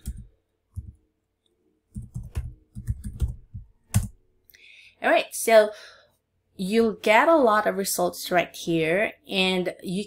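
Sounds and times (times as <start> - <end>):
typing on computer keyboard: 0.0 - 1.0, 1.9 - 4.2.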